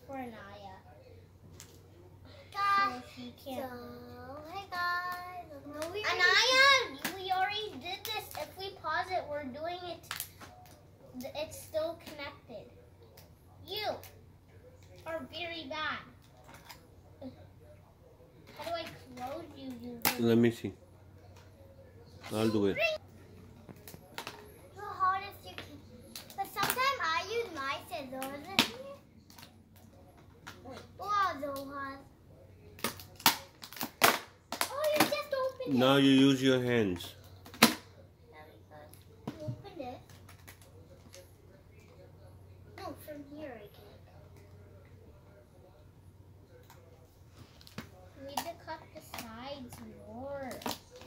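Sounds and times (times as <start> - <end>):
child speaking: 2.5 - 10.1, 26.4 - 29.0, 30.7 - 32.0, 34.7 - 35.8.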